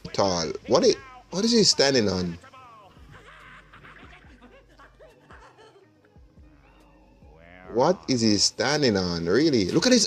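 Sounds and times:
cartoon music with gliding notes: 0.1 - 10.0.

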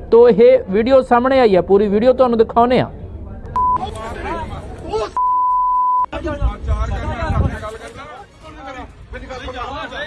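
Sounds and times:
censor beep: 3.5 - 3.8, 5.2 - 6.1
men talking: 3.7 - 5.3, 6.0 - 10.0.

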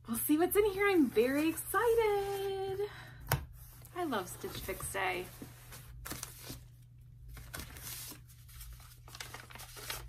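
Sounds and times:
paper packaging rustling: 4.1 - 10.0.

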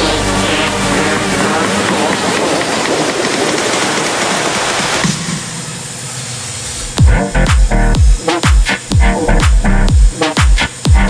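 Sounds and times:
band saw cutting log: 0.0 - 5.6
band saw running without load: 0.0 - 10.9.

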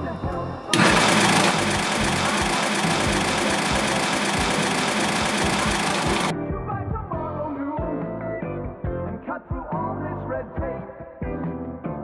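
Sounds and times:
shaved-ice machine running: 0.7 - 6.3.

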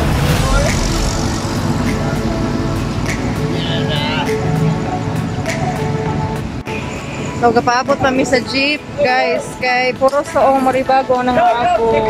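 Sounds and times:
vehicle engine rumble: 0.0 - 6.8
general traffic: 0.0 - 12.0.

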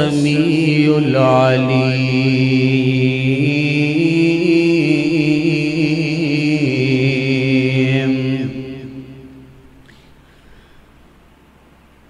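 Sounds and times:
man reciting in a melodic chant: 0.0 - 9.3.

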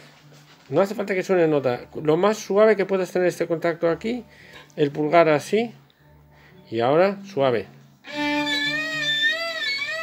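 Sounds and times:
violin note with vibrato: 8.0 - 10.0.

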